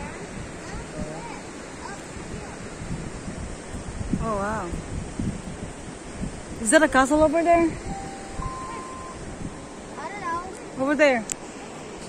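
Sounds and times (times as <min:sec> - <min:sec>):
wind rumbling on microphone: 0:00.0 - 0:12.0
faint thin steady tones: 0:06.6 - 0:12.0.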